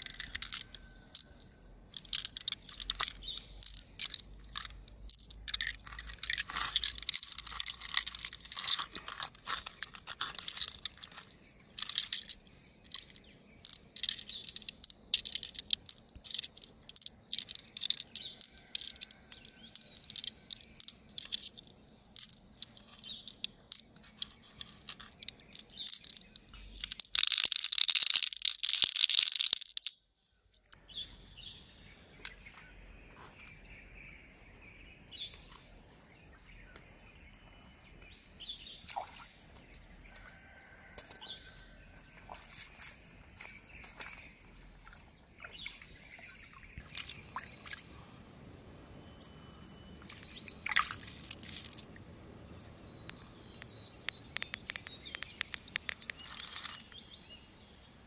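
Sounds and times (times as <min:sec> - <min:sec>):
beads pouring into shell: 0:00.0 - 0:01.4, 0:02.0 - 0:29.9, 0:50.3 - 0:51.8, 0:56.1 - 0:56.8
beads clicking against shell: 0:00.0 - 0:30.0, 0:50.1 - 0:51.9, 0:53.1 - 0:57.0
faint outdoor background: 0:00.0 - 0:58.0
bird chirps: 0:39.7 - 0:58.0.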